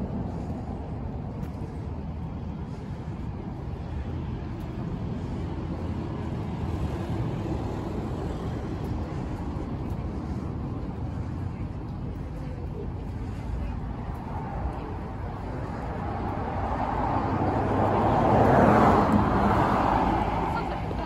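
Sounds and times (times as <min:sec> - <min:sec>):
passing cars and tyre noise: 0:00.0 - 0:21.0
truck passing: 0:00.0 - 0:21.0.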